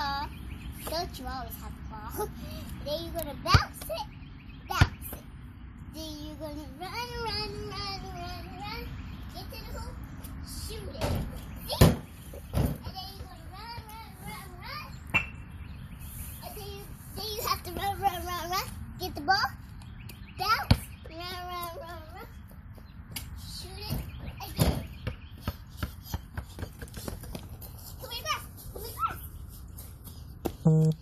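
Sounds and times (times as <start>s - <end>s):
young girl's high voice: 0.0s - 5.3s, 5.9s - 12.0s, 12.8s - 15.1s, 16.3s - 19.6s, 20.4s - 22.4s, 23.5s - 24.9s, 27.9s - 29.4s
basketball bouncing on concrete: 20.7s - 20.9s, 23.9s - 27.6s
child running footsteps on concrete: 25.4s - 31.0s.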